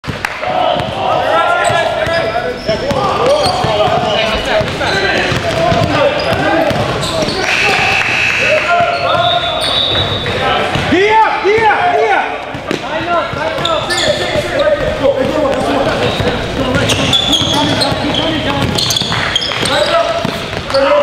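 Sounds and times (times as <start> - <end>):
sneakers squeaking on floor: 0.6 - 11.7, 12.4 - 21.0
basketball dribbling: 1.6 - 7.4, 12.5 - 21.0
people calling out: 5.8 - 12.4.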